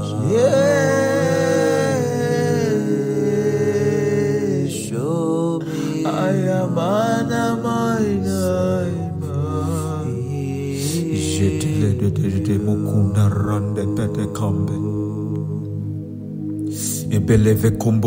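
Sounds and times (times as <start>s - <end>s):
person chanting melodically: 0.0s - 16.0s
sustained backing chords: 0.0s - 18.0s.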